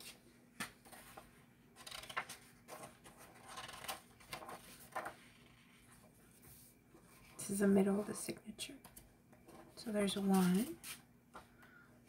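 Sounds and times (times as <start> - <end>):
paper pages turning: 0.8 - 5.9.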